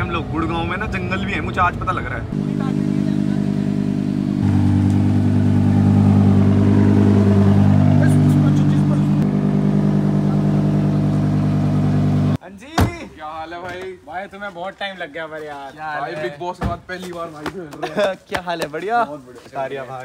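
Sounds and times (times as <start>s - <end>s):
car engine running at low revs: 2.4s - 12.4s.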